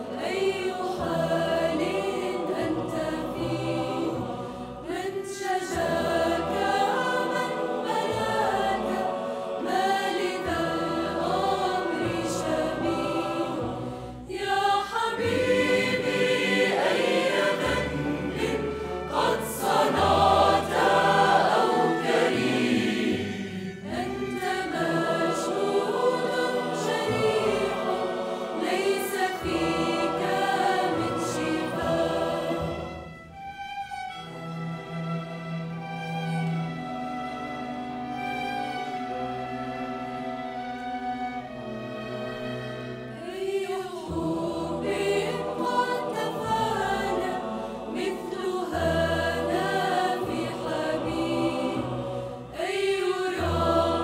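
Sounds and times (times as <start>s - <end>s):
mixed choir singing: 0.0s - 33.6s, 35.5s - 54.0s
strings and woodwinds: 0.0s - 54.0s.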